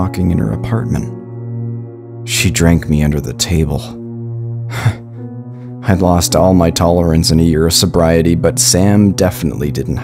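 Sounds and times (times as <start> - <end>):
background music of low tones: 0.0 - 10.0
man laughing breathily: 4.7 - 5.2.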